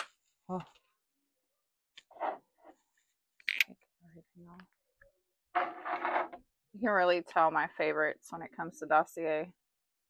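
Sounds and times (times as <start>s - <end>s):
woman speaking: 6.8s - 9.5s.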